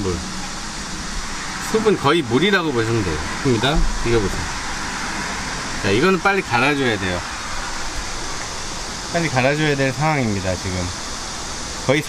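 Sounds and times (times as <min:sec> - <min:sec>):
steady background hiss: 0:00.0 - 0:12.0
man speaking: 0:05.8 - 0:07.3.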